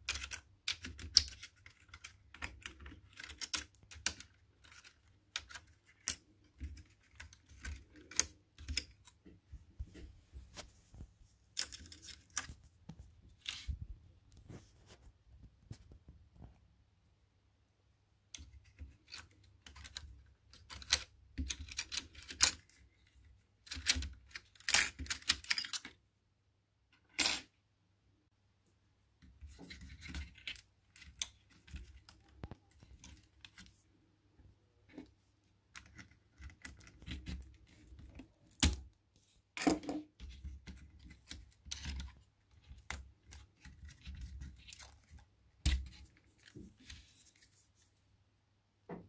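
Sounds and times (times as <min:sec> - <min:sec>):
small plastic clicks: 0:00.0 - 0:09.2.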